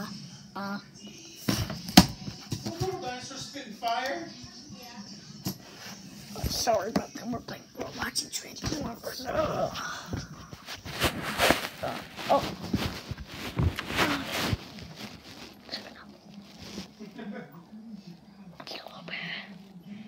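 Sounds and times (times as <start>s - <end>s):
murmur: 4.2s - 20.0s
faint whispering: 5.7s - 10.7s, 11.8s - 20.0s
phone rubbing against clothing: 5.8s - 17.3s.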